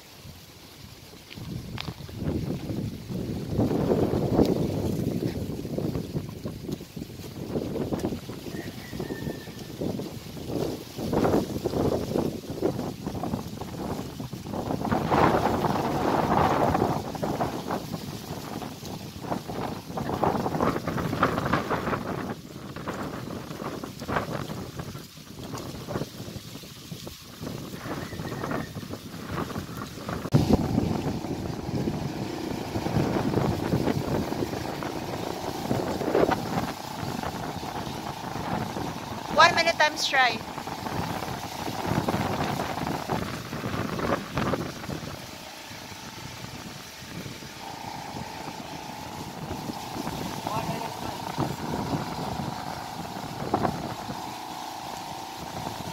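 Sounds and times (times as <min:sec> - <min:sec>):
wind buffeting microphone: 0:00.0 - 0:55.9
steady tonal hum: 0:30.3 - 0:55.9.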